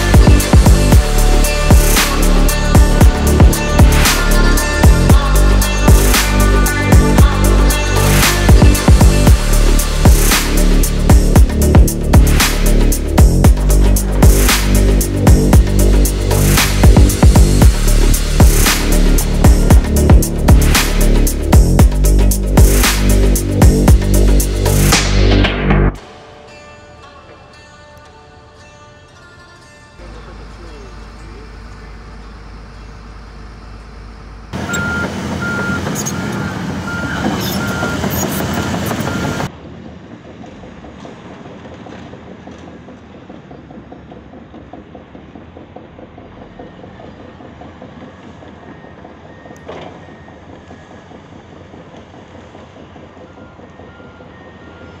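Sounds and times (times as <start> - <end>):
heavy diesel machinery running: 0.0 - 26.2, 30.0 - 55.0
backup alarm beeping: 34.6 - 39.5.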